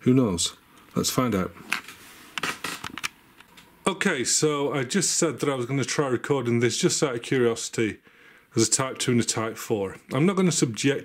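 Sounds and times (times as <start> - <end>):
man speaking: 0.0 - 1.6, 3.8 - 11.0.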